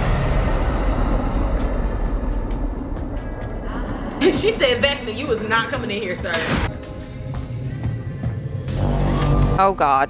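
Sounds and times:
deep cinematic rumble: 0:00.0 - 0:05.9.

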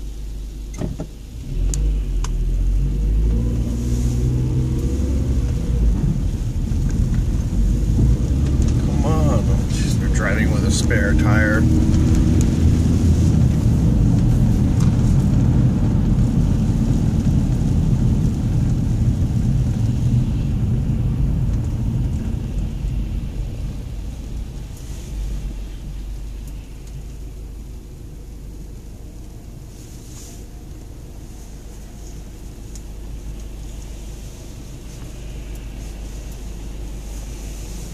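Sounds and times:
car engine idle hum: 0:00.0 - 0:37.9
car road and engine noise: 0:00.0 - 0:37.9.

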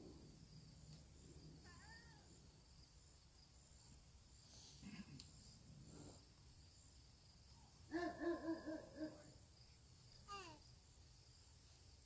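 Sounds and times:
animal call: 0:07.9 - 0:09.4.

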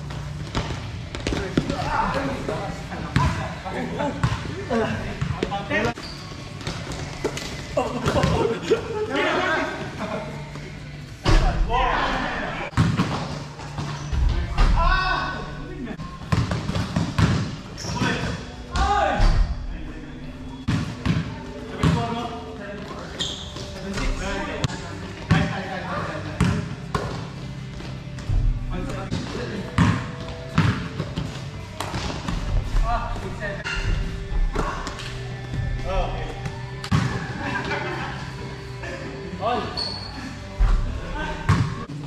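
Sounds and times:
basketball bouncing on court floor: 0:29.1 - 0:31.2.

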